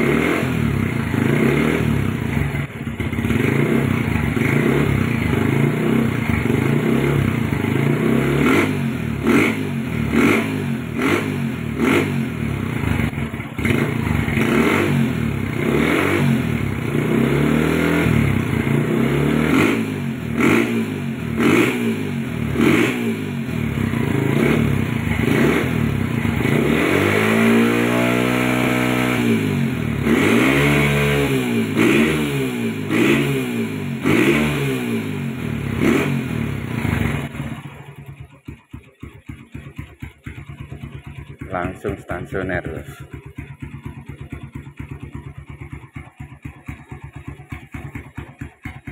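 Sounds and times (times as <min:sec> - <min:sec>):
motorcycle engine revving: 0:00.0 - 0:48.9.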